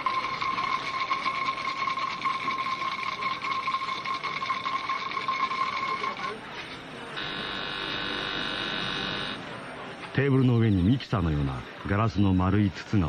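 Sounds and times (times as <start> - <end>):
electric alarm ringing: 0.0 - 6.3, 7.2 - 9.4.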